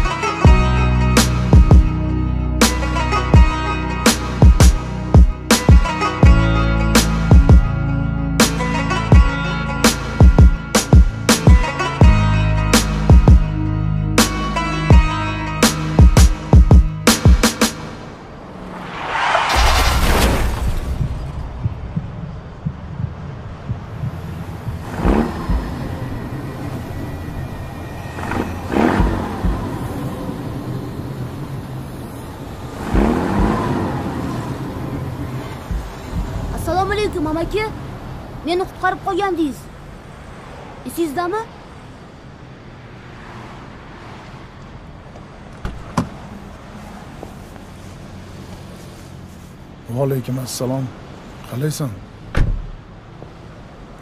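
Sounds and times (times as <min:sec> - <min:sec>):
car rumble: 0:00.0 - 0:49.9, 0:52.0 - 0:54.0
rushing swells: 0:17.0 - 0:41.0
low background rumble: 0:19.5 - 0:26.4
car door shutting: 0:45.5 - 0:46.2, 0:52.3 - 0:52.9.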